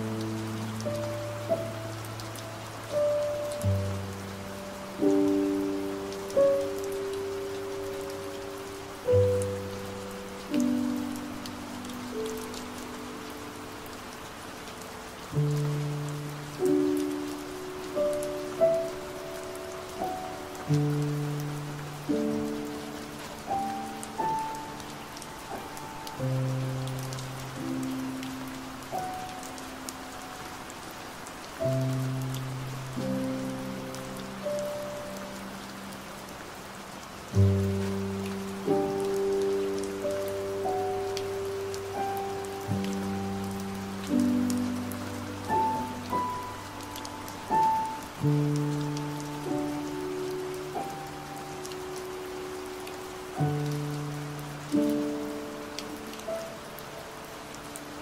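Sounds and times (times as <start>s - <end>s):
rain hissing and pattering: 0.0s - 58.0s
slow soft piano music: 0.0s - 58.0s.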